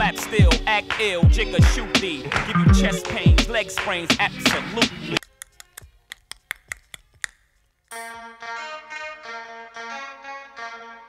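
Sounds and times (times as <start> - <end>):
keyboard-led music: 0.0 - 5.2, 7.9 - 11.0.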